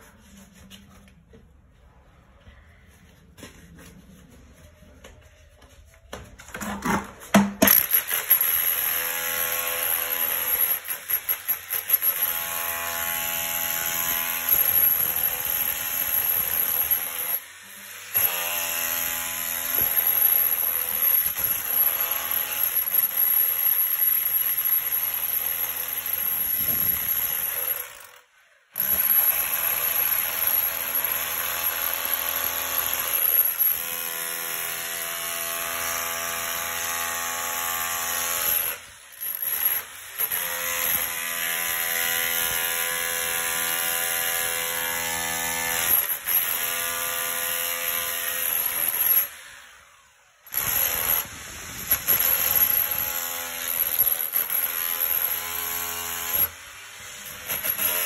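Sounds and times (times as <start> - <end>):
rotary hammer chipping concrete: 7.3 - 28.2, 28.8 - 49.4, 50.5 - 58.0.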